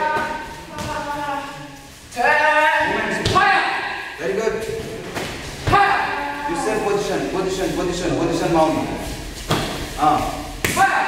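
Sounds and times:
people shouting: 0.0s - 4.2s, 5.6s - 6.9s, 10.7s - 11.0s.

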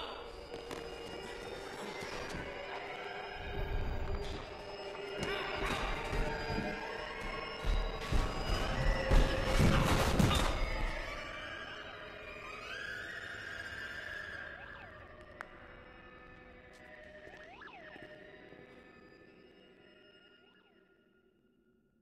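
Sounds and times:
film score with sustained tones: 0.0s - 22.0s
body tumbling down concrete stairs: 5.1s - 11.1s.

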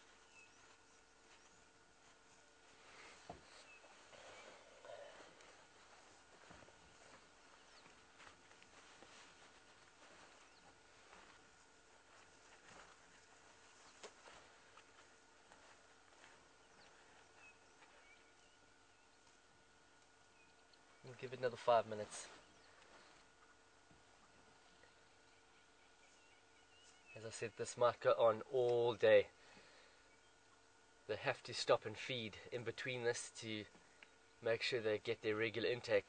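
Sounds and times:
faint bird chirps: 0.0s - 8.2s, 15.5s - 19.5s, 22.0s - 27.7s, 29.7s - 30.8s
faint high bird chirps: 24.1s - 27.5s.

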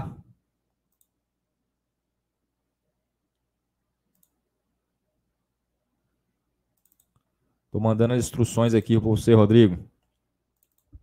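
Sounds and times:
faint computer clicks: 0.9s - 1.2s, 4.1s - 4.4s, 6.7s - 7.4s, 10.0s - 11.0s.

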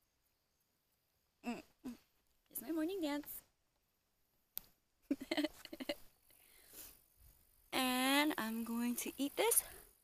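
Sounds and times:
woman's short vocal sounds: 1.4s - 2.1s.

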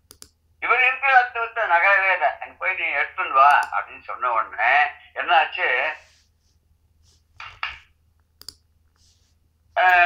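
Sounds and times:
person speaking loudly: 0.6s - 6.1s, 9.8s - 10.0s.

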